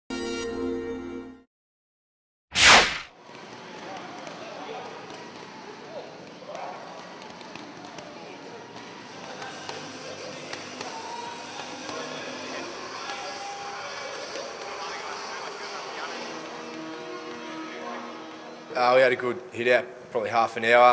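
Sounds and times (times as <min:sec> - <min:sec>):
whoosh effect: 0:02.5 - 0:03.1
faint voices: 0:03.3 - 0:18.4.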